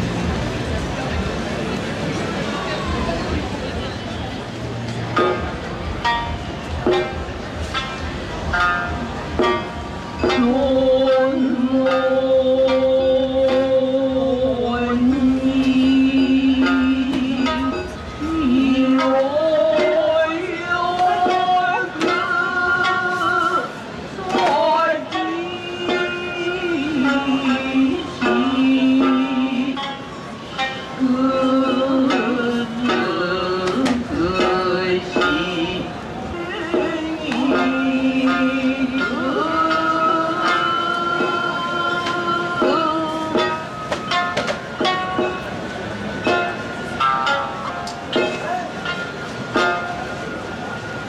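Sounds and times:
plucked string instrument notes: 0:00.0 - 0:51.0.

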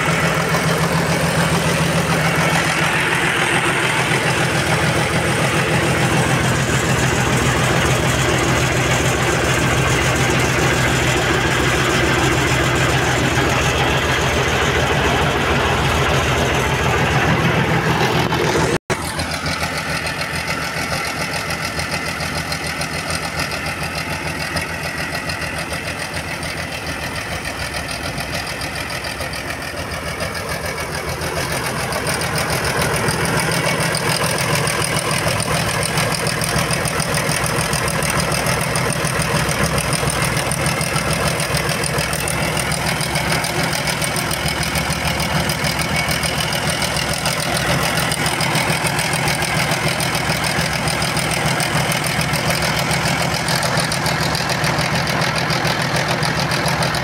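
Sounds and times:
diesel tractor engine idling: 0:00.0 - 0:57.0.

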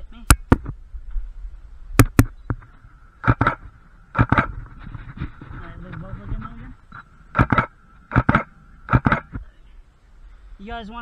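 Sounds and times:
camera shutter clicking: 0:03.2 - 0:04.5, 0:07.4 - 0:09.3.

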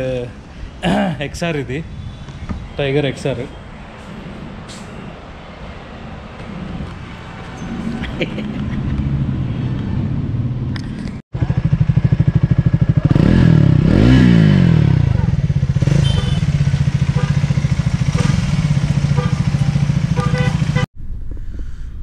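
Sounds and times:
motorcycle engine idling and revving: 0:06.4 - 0:20.9.

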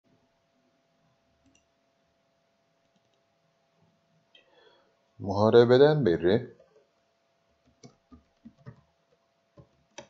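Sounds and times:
faint steady hum: 0:00.1 - 0:10.0
faint clicks: 0:01.4 - 0:01.7, 0:02.8 - 0:03.3.

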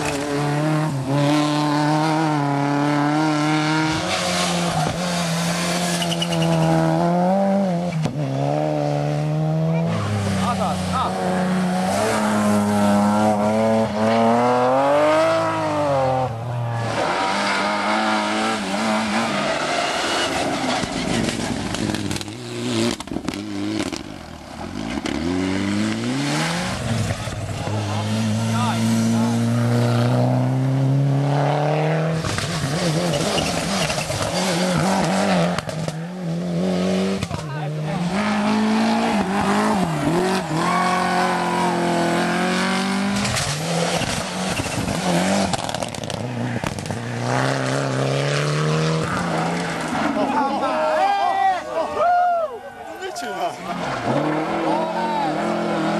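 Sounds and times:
rally cars revving past: 0:00.0 - 0:51.0, 0:53.5 - 0:55.9.

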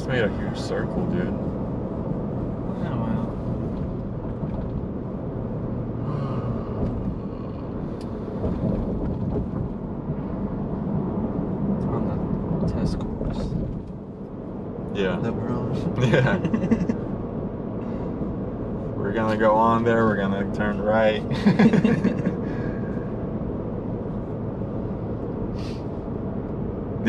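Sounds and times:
road noise: 0:00.0 - 0:27.0
truck engine rumble: 0:00.0 - 0:27.0.

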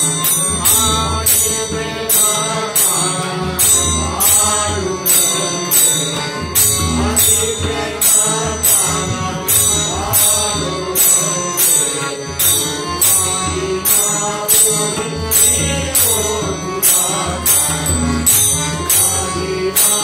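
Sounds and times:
harmonium: 0:00.0 - 0:20.0
tabla drums: 0:00.0 - 0:20.0
voices singing: 0:00.0 - 0:20.0.

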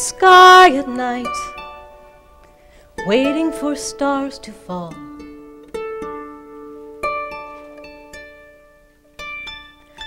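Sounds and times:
harp being plucked: 0:00.0 - 0:10.0.

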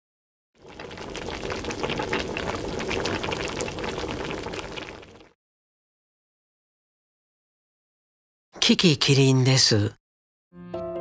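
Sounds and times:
beans boiling in water: 0:00.6 - 0:05.4.

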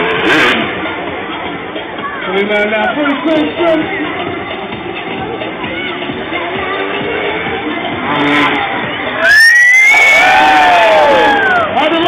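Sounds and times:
motocross bike engine revving: 0:00.0 - 0:01.7, 0:03.1 - 0:09.2
crowd cheering: 0:08.6 - 0:12.0.

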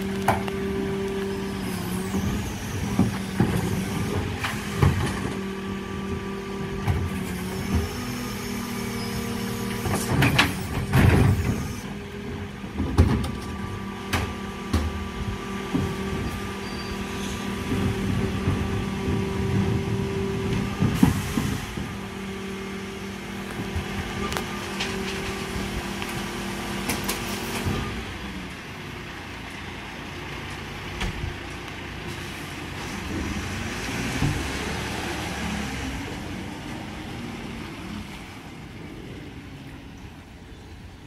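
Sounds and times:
hydraulics whining: 0:00.0 - 0:41.0
truck engine driving off: 0:00.0 - 0:41.0.

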